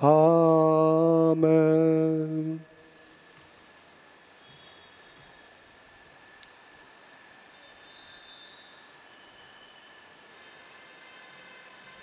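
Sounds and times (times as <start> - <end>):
small bells jingling: 7.5 - 10.5.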